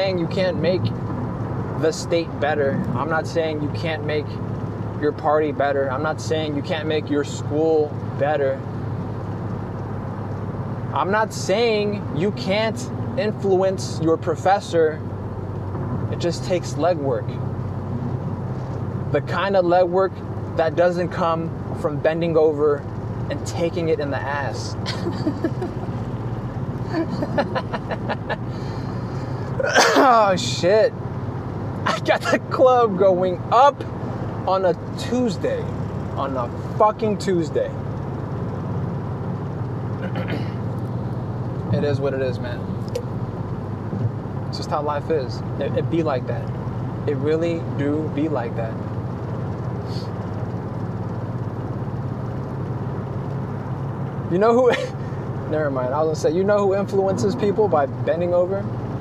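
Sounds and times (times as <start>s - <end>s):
car engine and tyres rumbling: 0.0s - 59.0s
breathy laughing: 26.9s - 29.4s.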